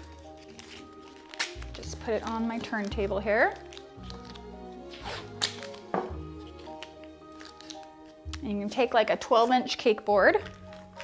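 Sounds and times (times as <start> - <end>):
background music: 0.0 - 11.0
masking tape ripping and tapping: 0.0 - 11.0.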